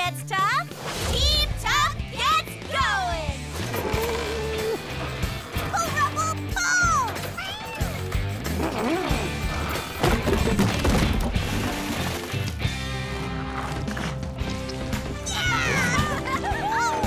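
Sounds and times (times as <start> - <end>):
knocks and crashes: 8.5 - 12.7.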